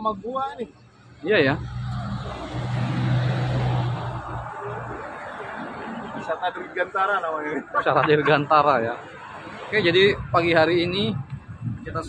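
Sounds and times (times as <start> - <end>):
car driving past: 1.4 - 6.6.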